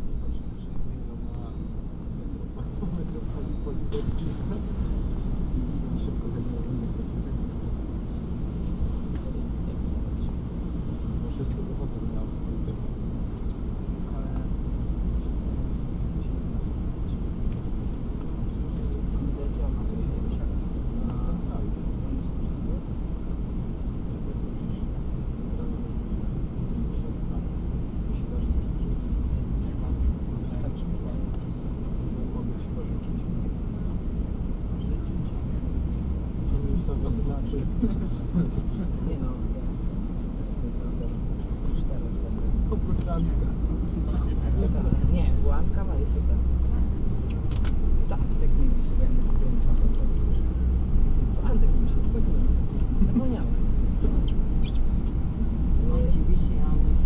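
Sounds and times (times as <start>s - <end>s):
bus engine idling: 0.0s - 57.0s
voices talking: 0.0s - 57.0s.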